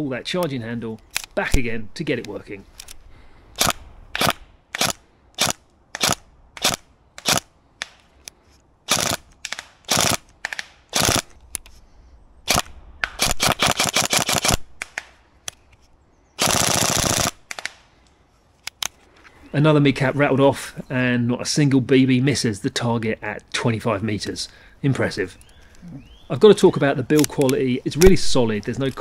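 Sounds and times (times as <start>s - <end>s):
airsoft gun full-auto burst: 3.6s - 7.4s, 8.9s - 9.2s, 9.9s - 10.2s, 10.9s - 11.3s, 13.2s - 14.6s, 16.4s - 17.4s.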